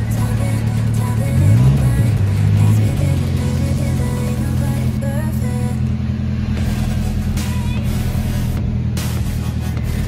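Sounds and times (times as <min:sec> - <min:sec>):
background music: 0:00.0 - 0:10.0
steady low hum: 0:00.0 - 0:10.0.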